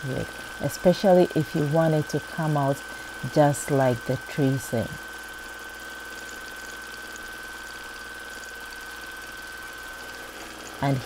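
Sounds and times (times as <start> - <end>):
sewing machine humming: 0.0 - 11.0.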